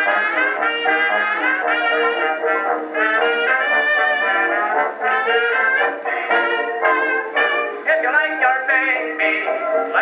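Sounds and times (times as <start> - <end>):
dance orchestra on old record: 0.0 - 10.0
man singing with vibrato: 3.2 - 10.0.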